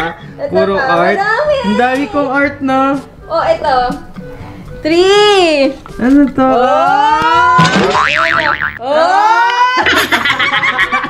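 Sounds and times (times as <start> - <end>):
wobbling boing: 7.2 - 8.8.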